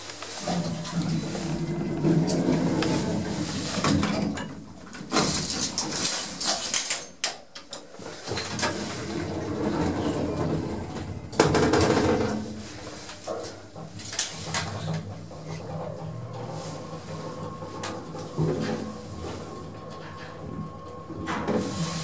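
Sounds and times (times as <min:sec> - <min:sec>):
lift doors sliding and clunking: 0:00.3 - 0:07.1, 0:07.9 - 0:22.0.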